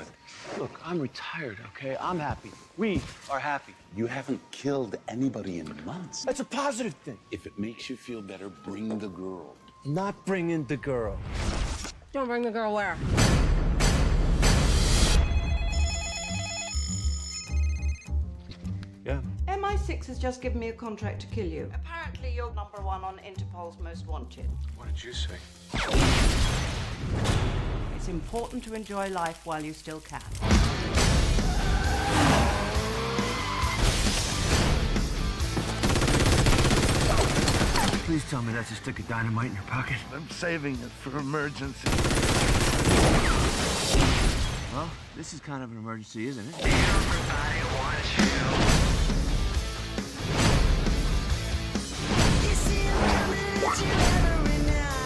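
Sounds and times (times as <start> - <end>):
telephone ringing with electronic trill: 15.2 - 18.2
automatic gunfire: 35.8 - 38.0, 41.8 - 43.5.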